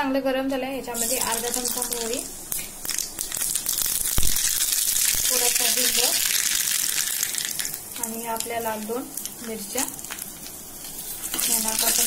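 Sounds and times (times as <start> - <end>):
seeds sizzling in hot oil: 1.0 - 12.0.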